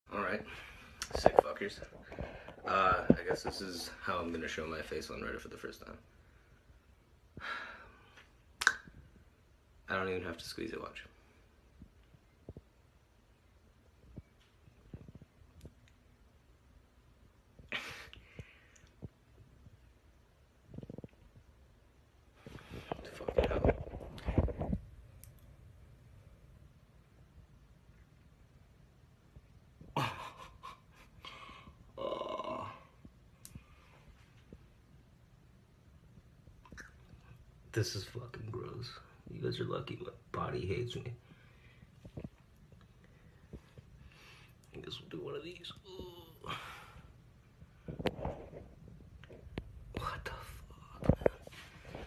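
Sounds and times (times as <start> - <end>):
man making wordless vocal noises: 32.0 - 32.9, 44.8 - 46.8
man sighing: 46.0 - 47.1.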